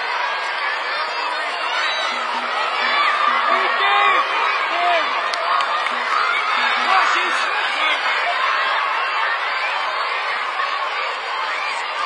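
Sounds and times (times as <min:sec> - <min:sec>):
children's voices: 0:00.0 - 0:12.0
crowd shouting: 0:00.0 - 0:12.0.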